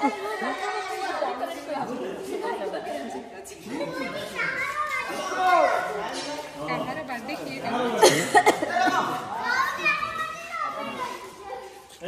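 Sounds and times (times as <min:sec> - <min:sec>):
children calling out: 0:00.0 - 0:01.8, 0:03.6 - 0:06.5, 0:08.5 - 0:11.9.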